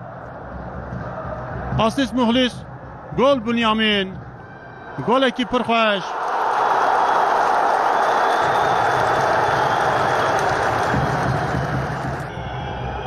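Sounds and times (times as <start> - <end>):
stadium crowd cheering: 0.0 - 2.5, 4.4 - 13.0.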